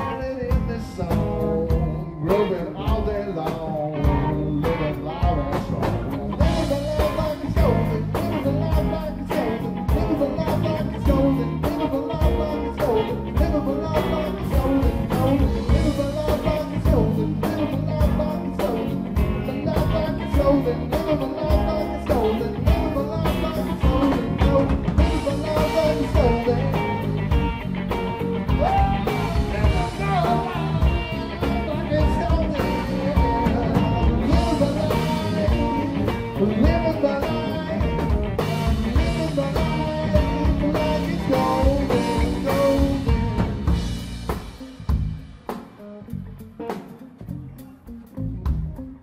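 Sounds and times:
bass guitar notes: 0:00.0 - 0:49.0
live rock band playing: 0:00.0 - 0:49.0.

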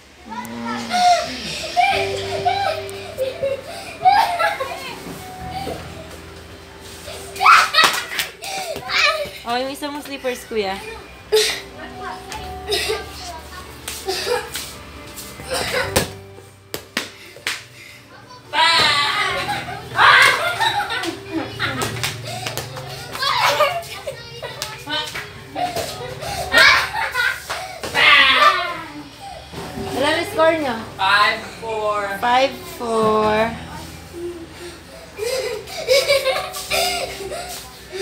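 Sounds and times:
children shouting: 0:07.3 - 0:09.3, 0:18.5 - 0:24.7, 0:25.7 - 0:29.4.

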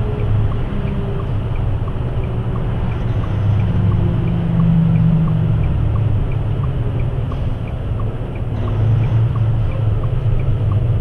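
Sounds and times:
light ticking: 0:00.0 - 0:11.0
truck engine and road noise: 0:00.0 - 0:11.0.

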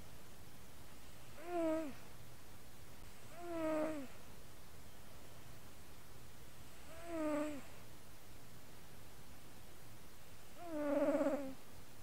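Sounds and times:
faint low background: 0:00.0 - 0:12.0
cat snoring squeaky breath: 0:01.3 - 0:02.0, 0:03.3 - 0:04.2, 0:06.8 - 0:07.7, 0:10.6 - 0:11.6.

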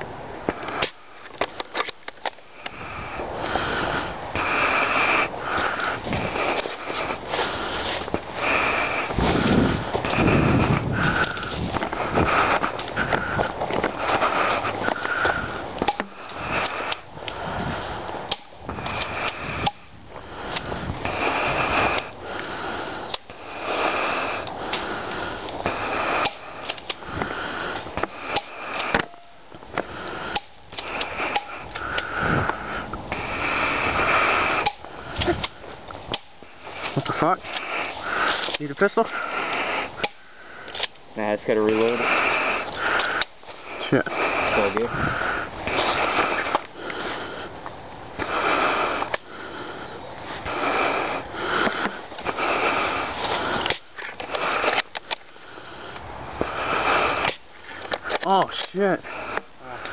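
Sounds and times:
microphone handling rustle: 0:05.5 - 0:22.2.

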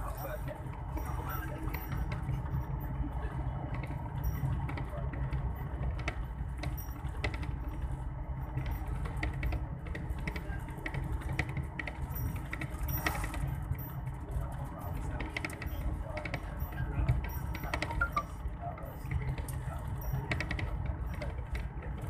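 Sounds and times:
vehicle engine and road rumble: 0:00.0 - 0:22.0
rattling clicks from vehicle body: 0:03.7 - 0:22.0.

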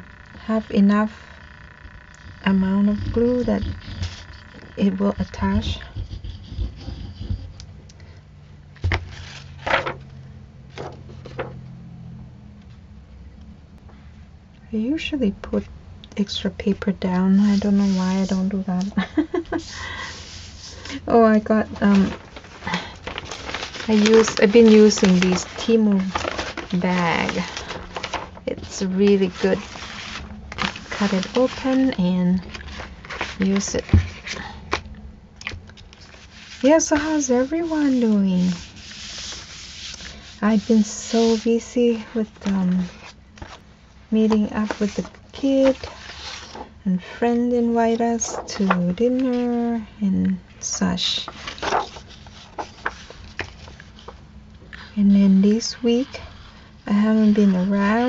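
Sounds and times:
paper and plastic crackling: 0:08.8 - 0:10.1, 0:17.4 - 0:34.8, 0:44.2 - 0:46.7, 0:48.1 - 0:49.6, 0:51.1 - 0:54.2.

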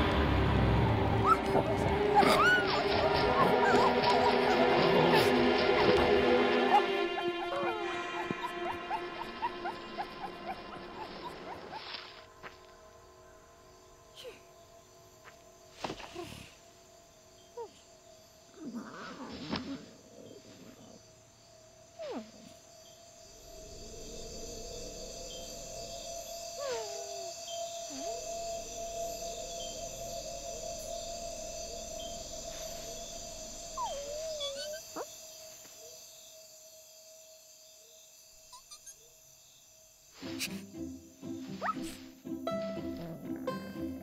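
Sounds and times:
soft film score music: 0:00.0 - 0:18.6, 0:20.1 - 0:37.0, 0:40.2 - 0:44.0
gliding cartoon squeaks: 0:01.2 - 0:12.0, 0:26.6 - 0:35.1, 0:38.5 - 0:39.1, 0:41.6 - 0:42.0.

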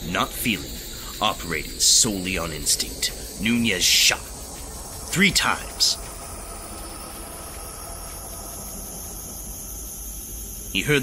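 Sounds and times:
faint high steady tones: 0:00.0 - 0:11.0
low hum: 0:00.0 - 0:11.0
steady hiss: 0:00.0 - 0:11.0.

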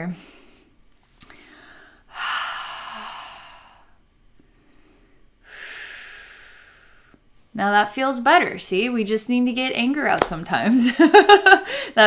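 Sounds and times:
woman breathing slowly: 0:00.1 - 0:07.3, 0:11.6 - 0:12.0.

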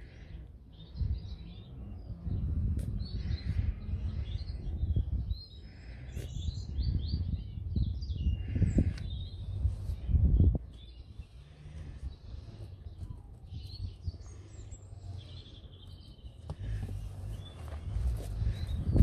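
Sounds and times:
low rumble and rustle: 0:00.0 - 0:19.0
small birds chirping: 0:00.0 - 0:19.0.

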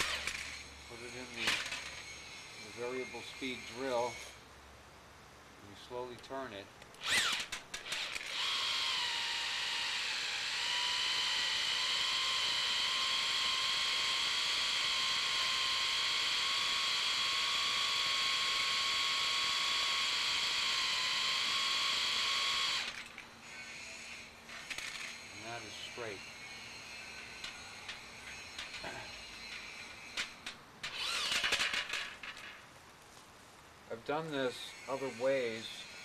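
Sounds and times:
drill clicks: 0:00.0 - 0:00.6, 0:06.8 - 0:16.0, 0:18.3 - 0:23.3, 0:27.4 - 0:32.0
electric drill motor whine: 0:00.0 - 0:04.4, 0:07.0 - 0:32.0, 0:34.6 - 0:36.0.

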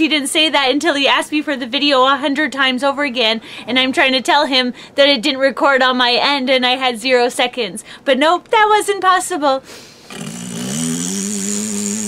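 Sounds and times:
man making buzzing drone: 0:10.1 - 0:12.0.

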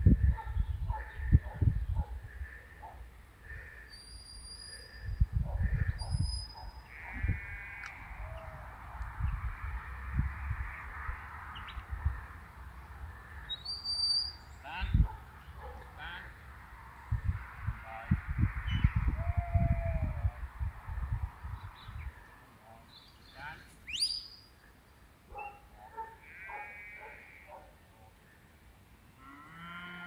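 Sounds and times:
wind rumble on microphone: 0:00.0 - 0:02.6, 0:04.9 - 0:13.5, 0:14.7 - 0:15.6, 0:16.6 - 0:22.2.

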